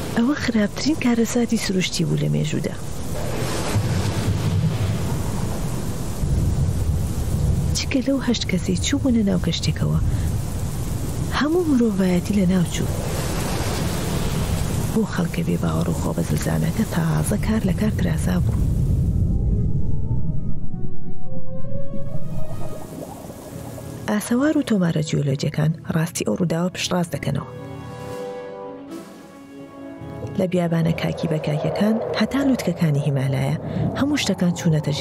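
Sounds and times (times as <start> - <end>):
rain and wind hissing: 0.0 - 19.3, 22.7 - 24.4, 30.0 - 35.0
thunder rumbling: 2.8 - 24.0, 30.7 - 35.0
deep rumble: 17.3 - 23.1, 30.4 - 35.0
long drawn-out wavering tones: 30.7 - 35.0.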